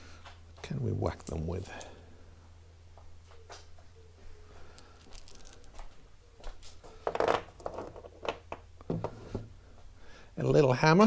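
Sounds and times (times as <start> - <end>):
metal hand tools clinking: 1.0 - 2.0, 4.8 - 5.9.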